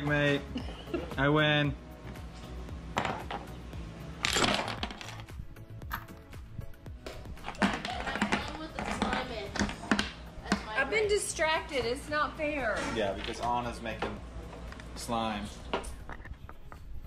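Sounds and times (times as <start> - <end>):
chess pieces clattering on wood: 4.2 - 5.2.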